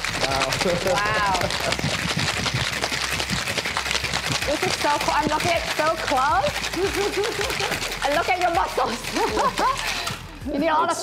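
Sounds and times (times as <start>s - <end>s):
ice rattling in cocktail shaker: 0.0s - 10.4s.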